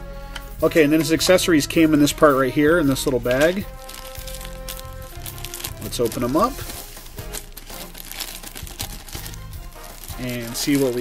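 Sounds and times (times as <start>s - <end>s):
quiet background music: 0.0s - 11.0s
plastic bag crinkling: 2.9s - 11.0s.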